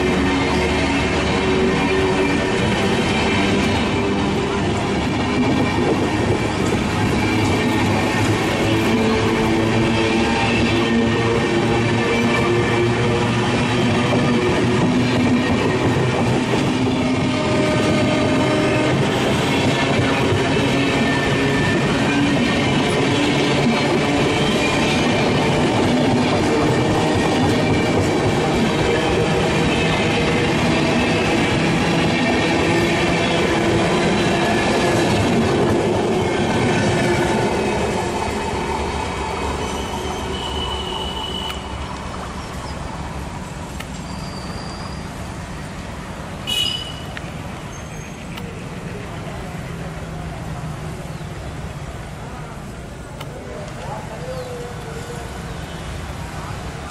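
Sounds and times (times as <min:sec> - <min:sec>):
train wheels rolling on rails: 0:00.0 - 0:56.9
faint high squealing whines: 0:43.9 - 0:45.2.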